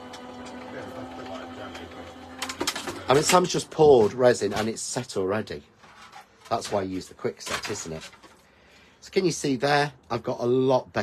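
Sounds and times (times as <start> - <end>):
die-cutting machine humming: 0.0 - 4.6.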